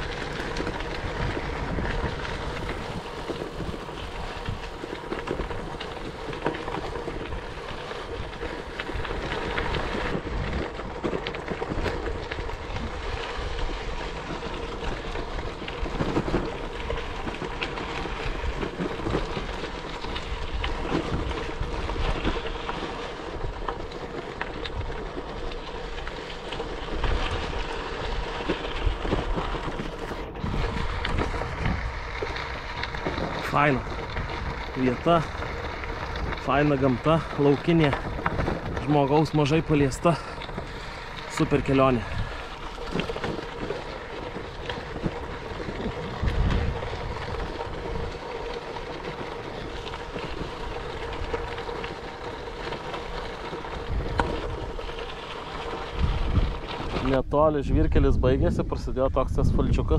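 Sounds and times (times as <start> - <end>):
bicycle tyres rolling on gravel: 0.0 - 59.9
wind buffeting microphone: 0.0 - 59.9.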